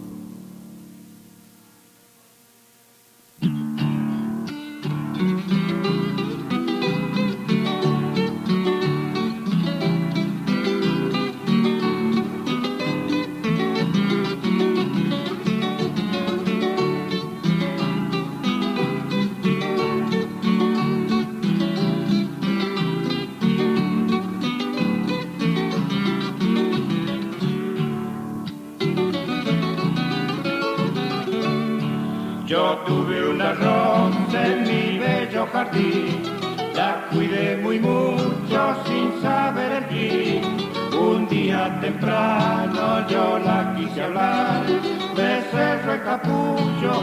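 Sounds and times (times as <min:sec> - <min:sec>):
plucked guitar melody: 0:03.4 - 0:47.0
strummed guitar chords: 0:03.4 - 0:47.0.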